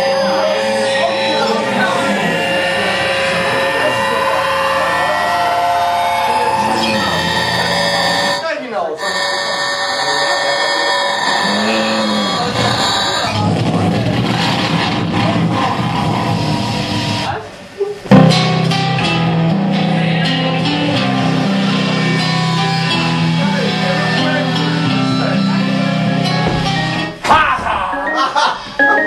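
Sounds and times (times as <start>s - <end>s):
falling pitch sweep: 0.0s - 8.4s
loud electronic noise music: 0.0s - 8.4s, 9.0s - 17.4s, 18.1s - 27.2s.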